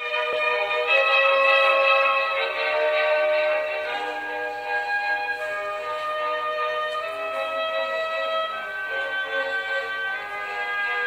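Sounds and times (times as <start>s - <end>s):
orchestral music: 0.0s - 11.0s.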